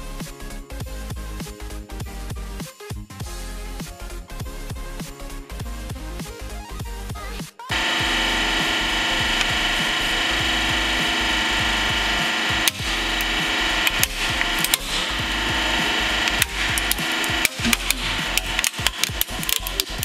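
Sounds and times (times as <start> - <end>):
hydraulic press humming: 7.7 - 20.0
plastic toy cracking and snapping: 16.2 - 20.0.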